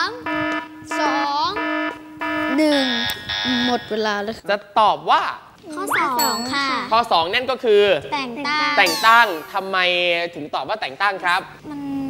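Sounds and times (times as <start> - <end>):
countdown timer beeping: 0.0 - 4.1, 8.8 - 9.9.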